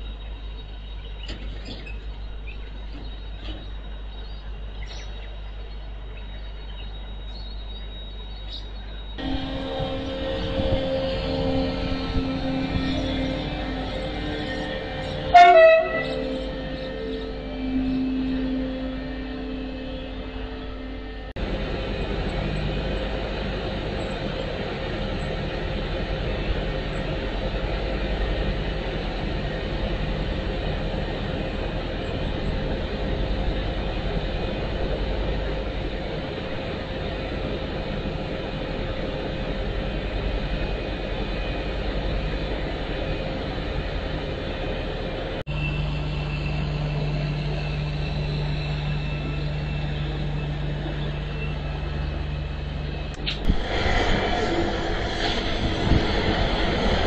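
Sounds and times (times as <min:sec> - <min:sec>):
diesel engine rumble with whine: 0:00.0 - 0:57.0
excavator engine low hum: 0:00.0 - 0:57.0.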